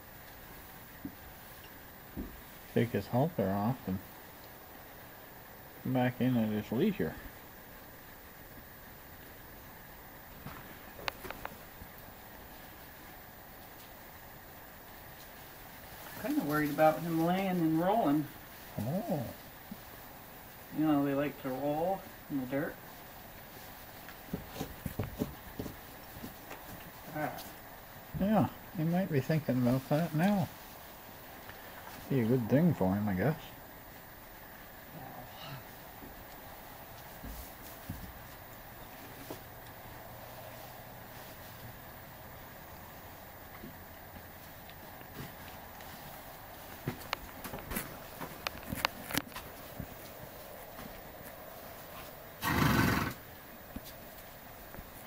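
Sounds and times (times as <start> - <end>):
horse hooves on stall floor: 0.2 - 2.7, 22.7 - 28.3, 35.9 - 55.0
horse call: 52.0 - 53.3.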